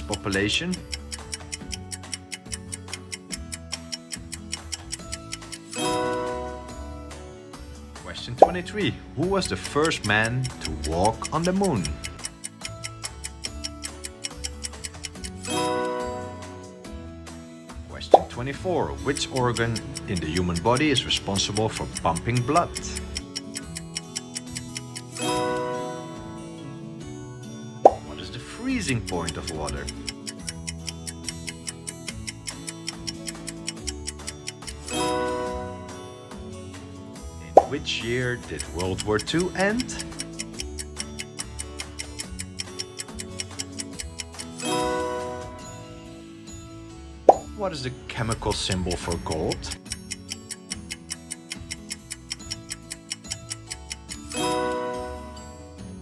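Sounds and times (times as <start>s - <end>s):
timer clock ticking: 0.0s - 6.3s, 8.4s - 16.1s, 18.1s - 25.7s, 27.9s - 35.5s, 37.4s - 45.0s, 48.2s - 55.0s
background music: 0.0s - 56.0s
bright musical chord: 25.2s - 26.6s, 44.6s - 46.0s.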